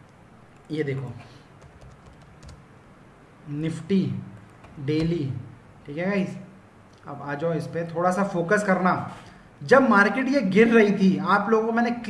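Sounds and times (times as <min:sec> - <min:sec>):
keyboard keys typing: 0:00.5 - 0:02.6, 0:04.4 - 0:05.2.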